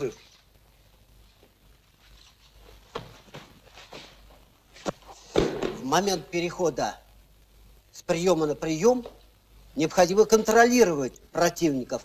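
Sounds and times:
footsteps and shuffling: 0:00.0 - 0:05.8
heavy thud: 0:05.3 - 0:06.0.

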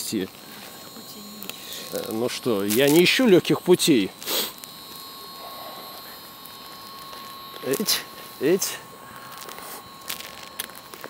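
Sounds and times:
city background hum: 0:00.0 - 0:11.0
faint high whine: 0:00.0 - 0:11.0.

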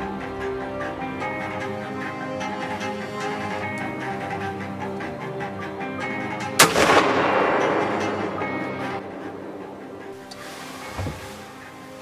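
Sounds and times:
string music: 0:00.0 - 0:12.0
rifle shot echoing: 0:06.6 - 0:08.5.

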